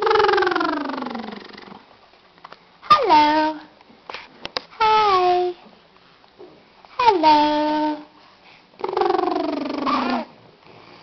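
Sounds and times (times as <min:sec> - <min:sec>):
woman cooing: 0:00.0 - 0:01.8, 0:08.8 - 0:10.3.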